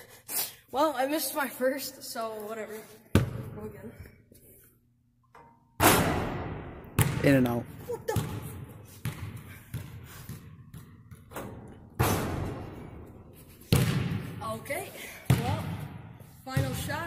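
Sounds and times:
basketball bouncing on gym floor: 3.1s - 3.8s, 5.8s - 17.0s
basketball hitting hoop: 5.8s - 7.5s, 8.1s - 13.0s, 13.7s - 14.4s.

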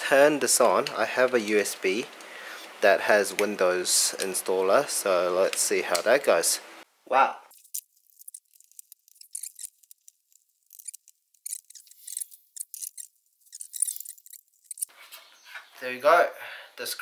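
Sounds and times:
plastic clicks and scrapes: 7.6s - 14.9s.

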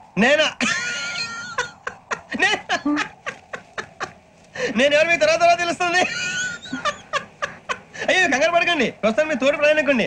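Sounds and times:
man laughing hard: 0.6s - 4.2s, 5.9s - 8.3s.

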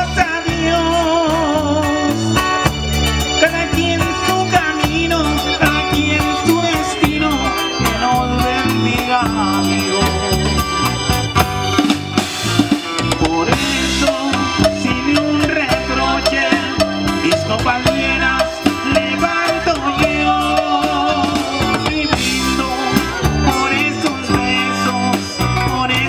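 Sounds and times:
acoustic guitar: 0.0s - 26.0s
bass guitar: 0.0s - 26.0s
drum kit: 0.0s - 26.0s
keyboard: 0.0s - 26.0s
live band playing: 0.0s - 26.0s.

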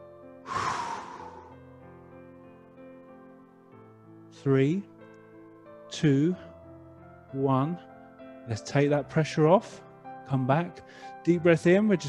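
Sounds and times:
gentle background music: 0.0s - 12.0s
person breathing out hard: 0.5s - 1.7s.

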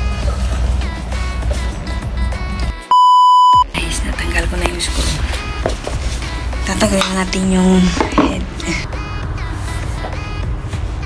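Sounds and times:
background music with steady beat: 0.0s - 11.0s
electronic beep: 2.9s - 3.7s.

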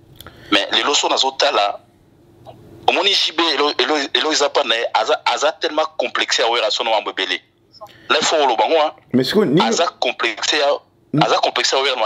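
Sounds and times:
man talking: 0.5s - 1.8s, 2.9s - 7.4s, 8.1s - 12.0s.

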